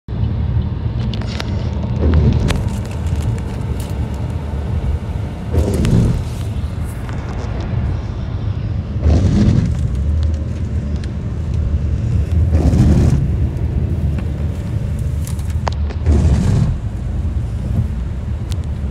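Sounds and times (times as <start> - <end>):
car road noise inside cabin: 0.1 - 18.9.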